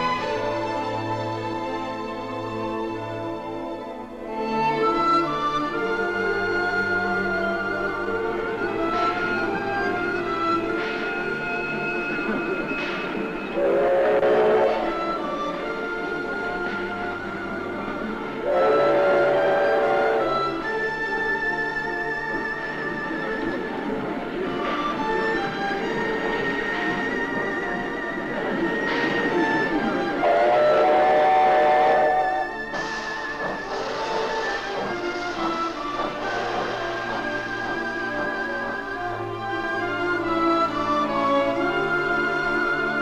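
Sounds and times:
orchestral music: 0:00.0 - 0:43.0
railway train: 0:00.0 - 0:43.0
train horn blast: 0:13.5 - 0:15.1, 0:18.4 - 0:20.7, 0:30.2 - 0:32.7.

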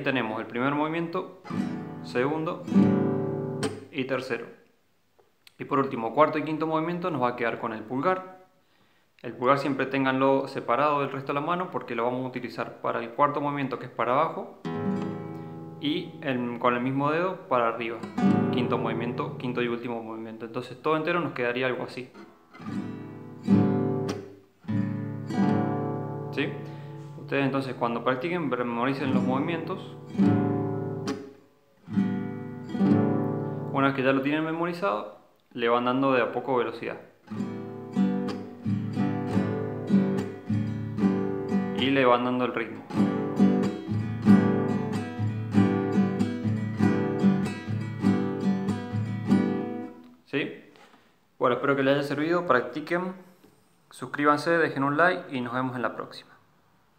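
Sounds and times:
guitar strumming: 0:01.5 - 0:03.9, 0:14.7 - 0:16.2, 0:18.0 - 0:19.7, 0:22.2 - 0:27.5, 0:29.0 - 0:33.8, 0:37.3 - 0:41.8, 0:42.8 - 0:50.1.

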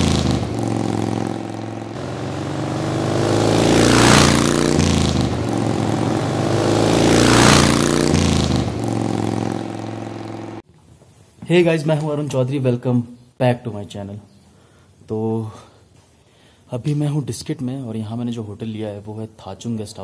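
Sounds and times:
motorcycle engine revving: 0:00.0 - 0:10.6.

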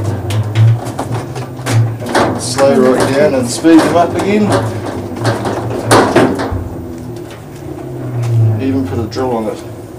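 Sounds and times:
electrical motor hum: 0:00.0 - 0:09.9.

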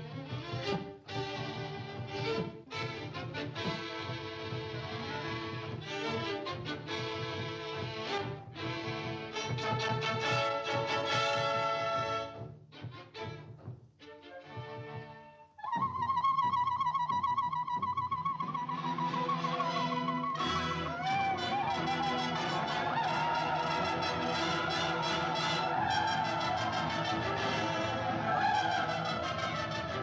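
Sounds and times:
orchestral cartoon music: 0:18.4 - 0:30.0.

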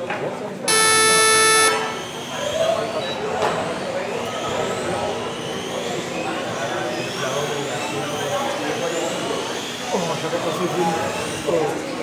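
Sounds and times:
electronic start beep: 0:00.7 - 0:02.1.

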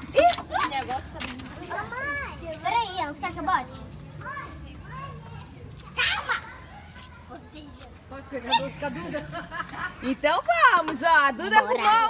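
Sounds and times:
young children's voices: 0:01.6 - 0:08.0.

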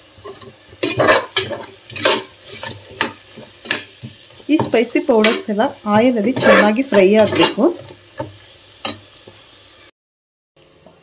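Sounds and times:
low sizzle of frying: 0:00.0 - 0:09.9, 0:10.6 - 0:11.0
metal ladle scraping a pot: 0:00.2 - 0:09.0.

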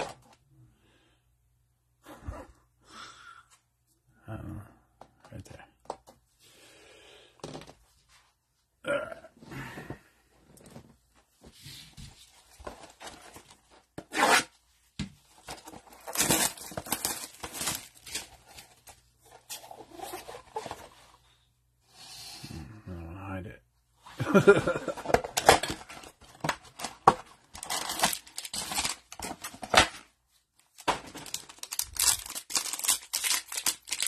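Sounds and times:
plastic and cardboard rustling: 0:00.0 - 0:00.4, 0:10.6 - 0:21.3, 0:24.3 - 0:34.0.

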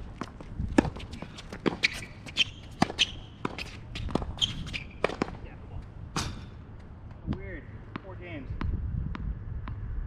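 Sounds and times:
ball bouncing on hard court: 0:00.2 - 0:05.4, 0:07.3 - 0:09.9
tennis ball struck by racket: 0:00.7 - 0:05.4, 0:06.1 - 0:06.6.

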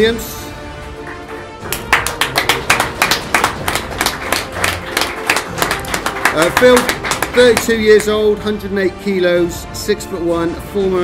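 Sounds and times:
background music: 0:00.0 - 0:11.0
people clapping: 0:01.0 - 0:08.3.

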